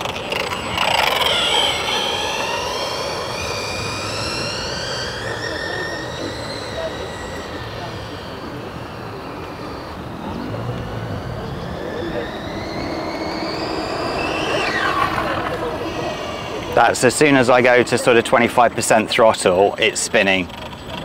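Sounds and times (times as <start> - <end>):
electric motor whining: 0.0 - 21.0.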